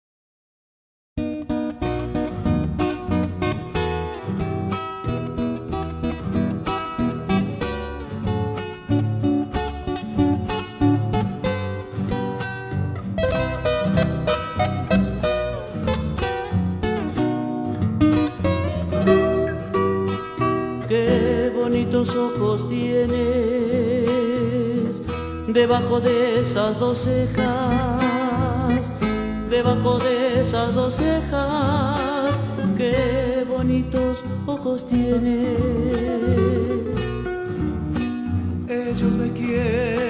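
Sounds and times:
acoustic guitars strumming: 0:01.2 - 0:40.0
bass line: 0:01.2 - 0:40.0.

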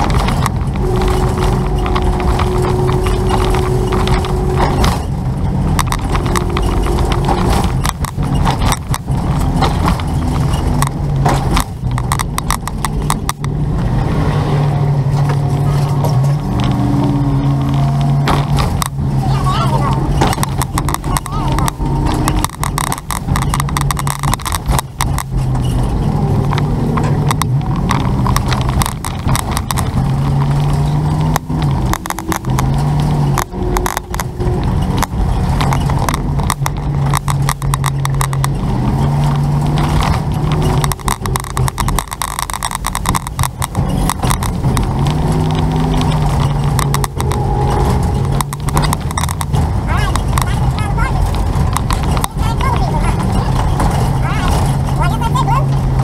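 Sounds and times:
road noise: 0:00.0 - 0:56.0
vehicle engine: 0:00.0 - 0:56.0
wind buffeting microphone: 0:00.0 - 0:56.0.

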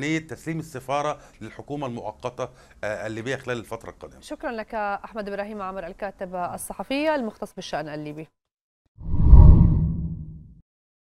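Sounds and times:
low whoosh: 0:09.0 - 0:10.6.

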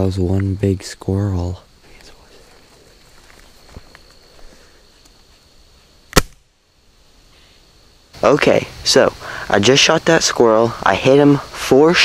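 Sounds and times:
pellet gun shot: 0:06.1 - 0:06.4.

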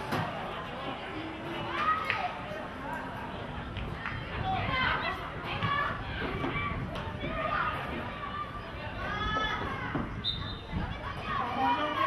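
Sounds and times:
children shouting: 0:04.4 - 0:12.0.

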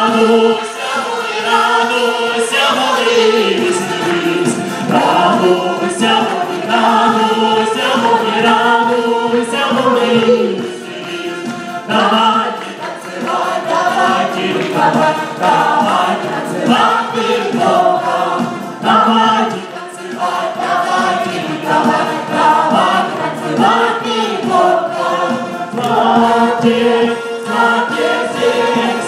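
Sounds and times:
group singing a worship song: 0:00.0 - 0:29.0.

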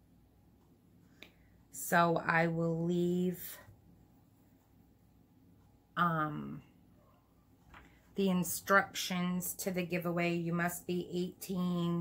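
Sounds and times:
woman speaking: 0:01.8 - 0:03.7, 0:06.0 - 0:06.7, 0:08.2 - 0:12.0.

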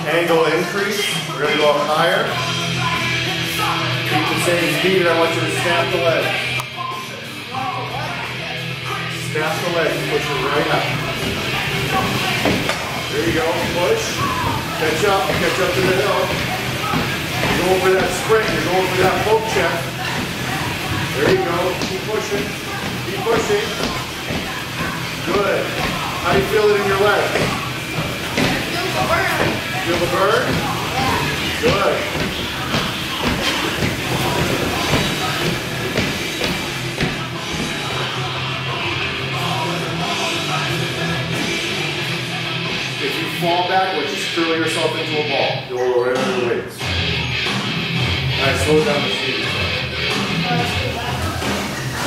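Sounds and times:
background music: 0:00.0 - 0:52.0
treadmill running under skates: 0:09.5 - 0:38.2.

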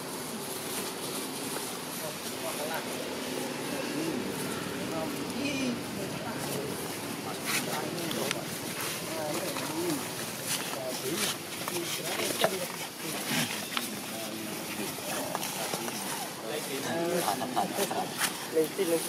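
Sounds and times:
rustles: 0:00.0 - 0:19.0
people talking indistinctly: 0:01.7 - 0:19.0.

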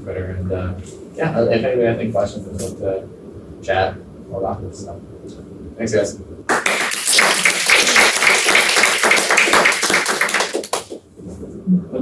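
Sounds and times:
audience applauding: 0:06.5 - 0:11.0.

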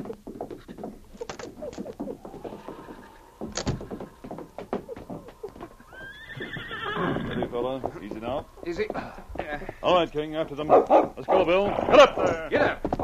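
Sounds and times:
hooves clopping: 0:00.0 - 0:13.0
horse whinnying: 0:01.2 - 0:09.0.

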